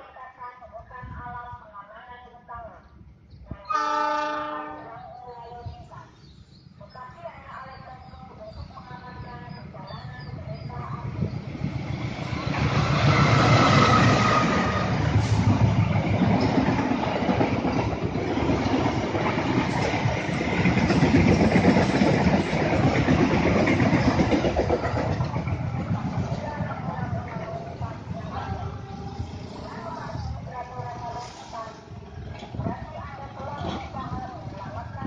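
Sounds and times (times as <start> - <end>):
diesel locomotive passing: 3.7 - 35.0
train wheels rumbling on rails: 7.8 - 35.0.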